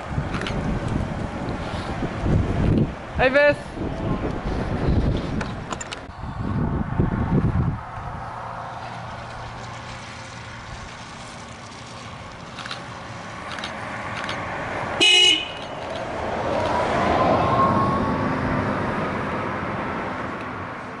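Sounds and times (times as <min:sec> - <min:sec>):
tyre and road noise: 0:00.0 - 0:21.0
electric bus driving past: 0:03.8 - 0:21.0
bus horn toot: 0:15.0 - 0:15.8.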